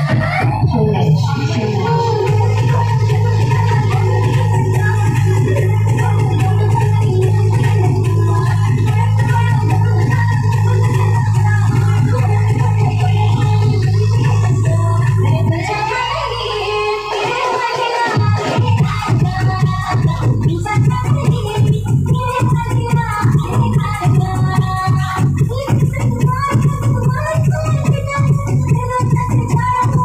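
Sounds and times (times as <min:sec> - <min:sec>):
loud dance music: 0:00.0 - 0:30.0.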